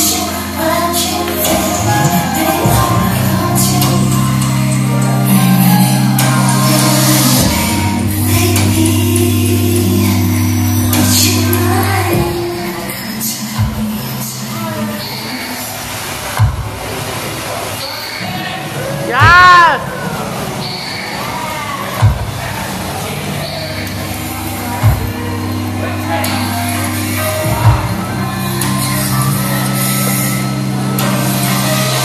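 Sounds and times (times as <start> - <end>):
club music over sound system: 0.0 - 16.8, 23.2 - 32.0
crowd noise: 0.0 - 32.0.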